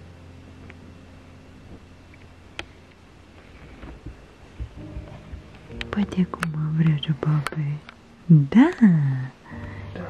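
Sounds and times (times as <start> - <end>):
woman speaking: 5.9 - 9.4.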